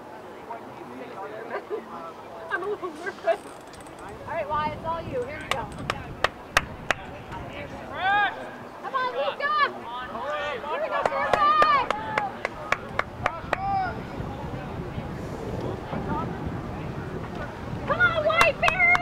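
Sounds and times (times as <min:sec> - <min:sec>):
voices calling and shouting: 0:00.0 - 0:19.0.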